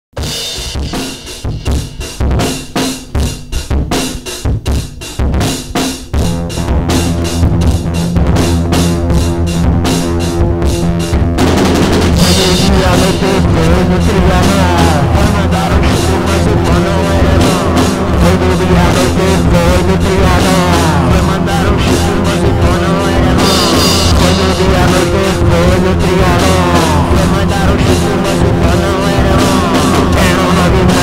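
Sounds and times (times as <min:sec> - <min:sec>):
drum kit playing: 0:00.1 - 0:31.0
rock band playing: 0:00.1 - 0:31.0
bass and guitar riff: 0:00.2 - 0:31.0.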